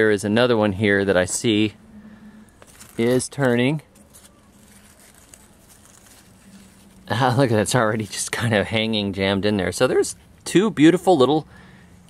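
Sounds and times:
vines and leaves rustling: 0.0 - 10.3.

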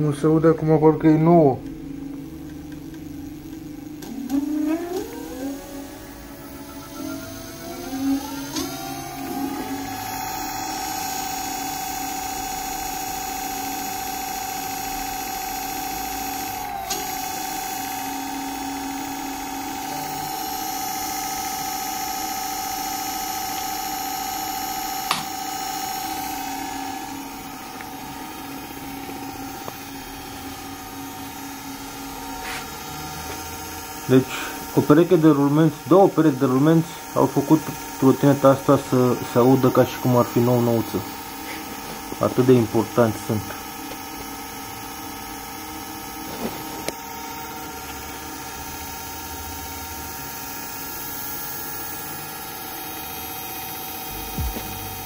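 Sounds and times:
electric motor whine: 0.0 - 55.0.

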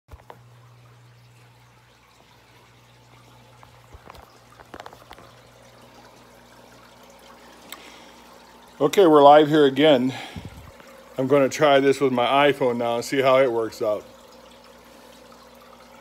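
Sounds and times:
aquarium water trickling: 0.1 - 16.0.

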